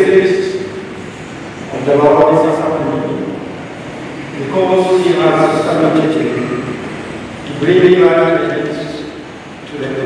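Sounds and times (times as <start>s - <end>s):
man speaking at microphone: 0.0s - 0.9s, 1.7s - 3.6s, 4.3s - 10.0s.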